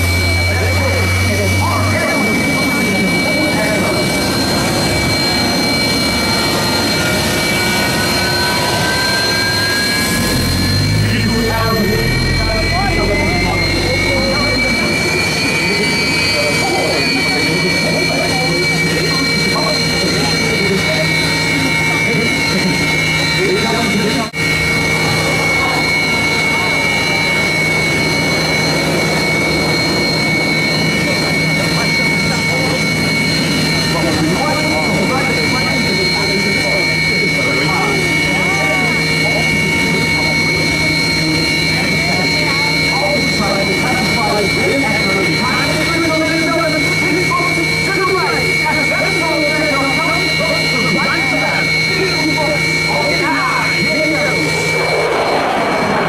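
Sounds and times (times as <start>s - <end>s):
jet engines whining: 0.0s - 56.0s.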